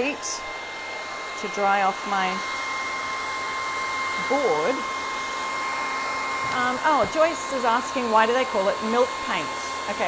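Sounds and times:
hair dryer running: 0.0 - 10.0.

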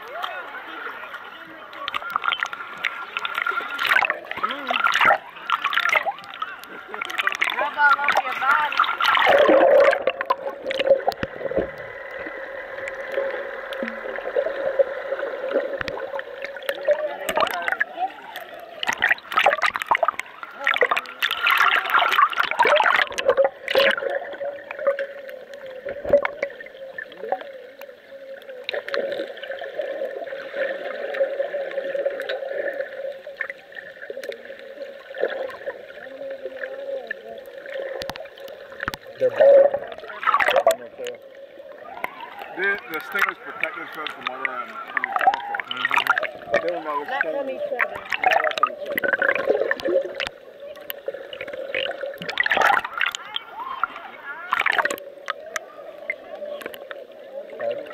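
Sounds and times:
faint underwater hum: 0.0 - 57.9
soft wash of water: 0.0 - 57.9
small clicks and crackles: 1.7 - 9.3, 15.5 - 39.2, 47.8 - 57.0.

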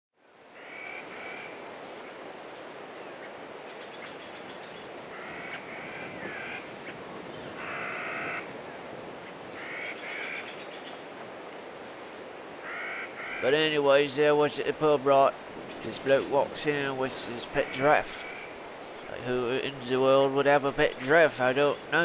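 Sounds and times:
steady background hiss: 0.2 - 22.0
frog croaking: 0.6 - 1.5, 5.1 - 6.7, 7.6 - 8.5, 12.6 - 13.6, 17.5 - 19.2.

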